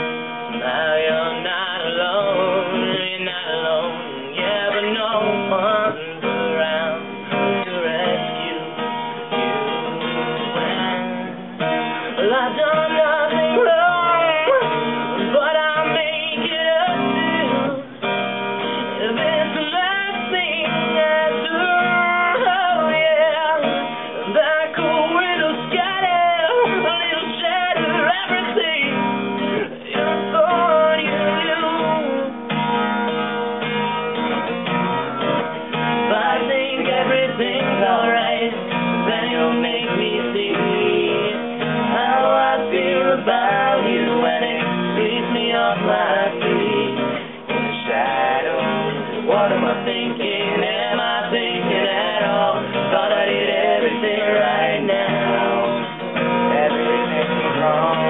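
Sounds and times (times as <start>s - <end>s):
man singing: 0.0s - 8.9s, 10.1s - 18.1s, 18.7s - 32.4s, 36.0s - 58.0s
acoustic guitar: 0.0s - 58.0s.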